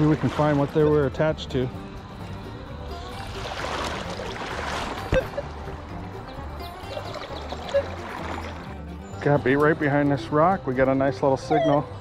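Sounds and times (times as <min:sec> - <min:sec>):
river water swishing: 0:00.0 - 0:00.9, 0:02.9 - 0:08.9.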